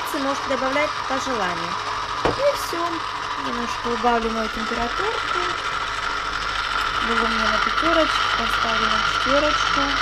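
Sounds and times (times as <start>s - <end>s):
high-pitched motor hum: 0.0s - 10.0s.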